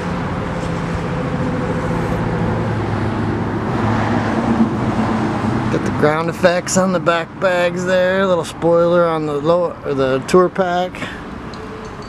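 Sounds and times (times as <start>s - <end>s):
road traffic noise: 0.0s - 12.0s
vehicle engine humming: 0.0s - 12.0s.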